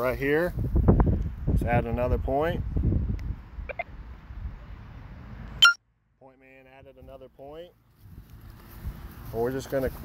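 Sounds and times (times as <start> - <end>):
wind rumbling on microphone: 0.0 - 4.7, 8.0 - 10.0.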